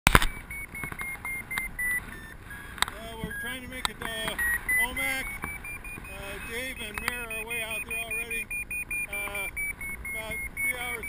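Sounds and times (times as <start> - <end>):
high-pitched electronic beeps: 0.1 - 11.0.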